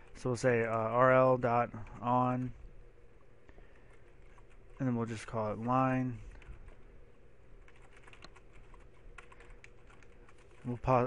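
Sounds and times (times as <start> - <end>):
computer keyboard typing: 3.7 - 4.9, 6.3 - 6.9, 7.6 - 11.0.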